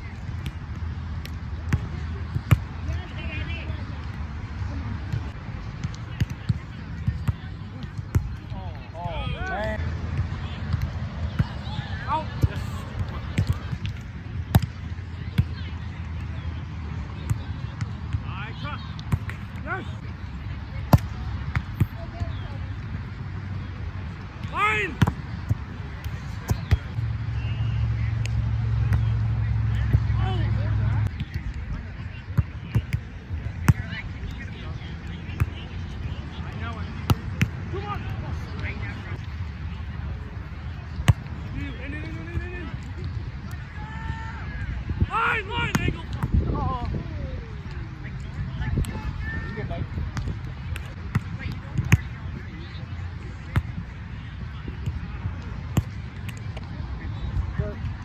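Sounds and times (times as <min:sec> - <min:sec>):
players shouting: 0:07.4 - 0:13.8, 0:17.3 - 0:20.1, 0:24.4 - 0:31.1, 0:43.5 - 0:47.4.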